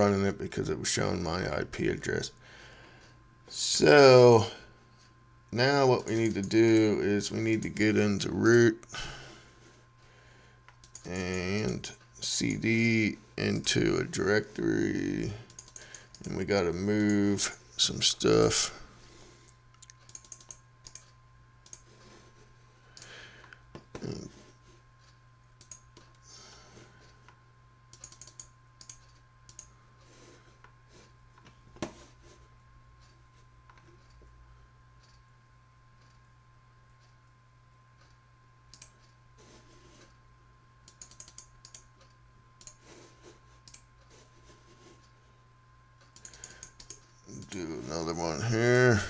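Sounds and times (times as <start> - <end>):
faint electrical hum: 0.0 - 49.0
keyboard and mouse clicks: 10.7 - 11.3, 15.5 - 16.4, 19.8 - 21.9, 25.6 - 26.0, 27.9 - 29.7, 40.8 - 41.9, 46.1 - 47.5.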